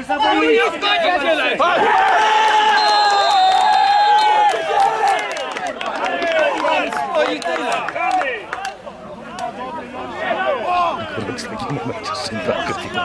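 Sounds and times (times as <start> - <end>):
men shouting: 0.1 - 2.8.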